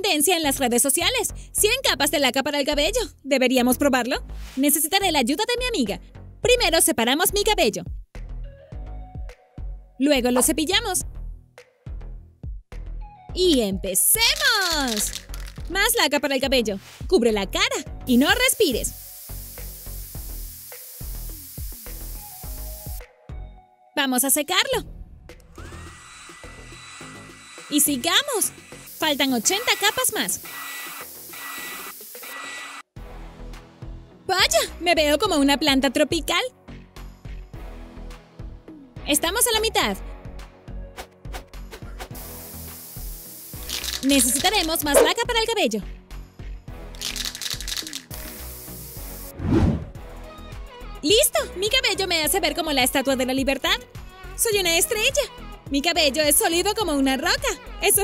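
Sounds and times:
background music: 0:00.0 - 0:32.3, 0:32.9 - 0:58.0
aerosol can spraying hiss: 0:14.3 - 0:15.7, 0:18.1 - 0:23.1, 0:25.8 - 0:32.5, 0:41.7 - 0:45.2, 0:47.0 - 0:49.4.

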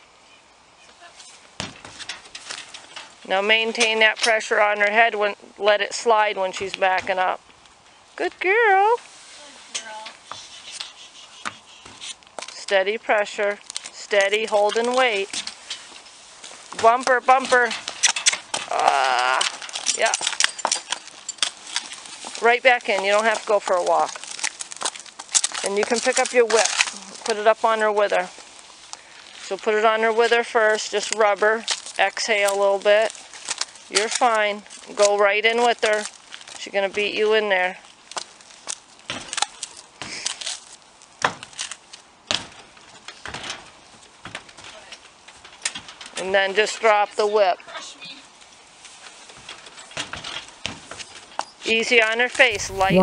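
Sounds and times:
horse hooves knocking on trailer ramp: 0:01.6 - 0:03.2
horse hooves on asphalt: 0:11.4 - 0:46.8.

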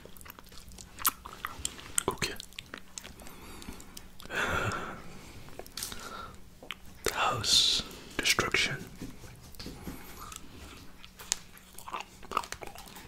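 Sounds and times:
soft chewing clicks: 0:00.0 - 0:07.2, 0:09.5 - 0:13.0.

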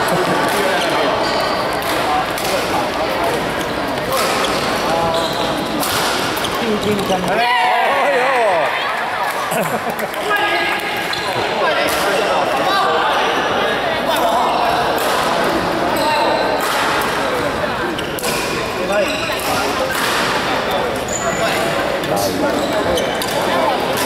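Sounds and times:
hubbub of voices in hall: 0:00.0 - 0:24.0
badminton rackets hitting shuttlecocks: 0:04.0 - 0:04.9, 0:05.8 - 0:06.6.

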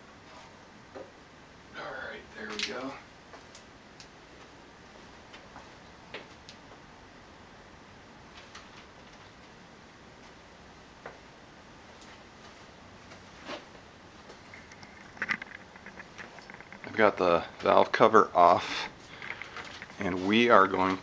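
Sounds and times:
faint clicks and knocks: 0:14.2 - 0:18.0, 0:18.9 - 0:21.0.

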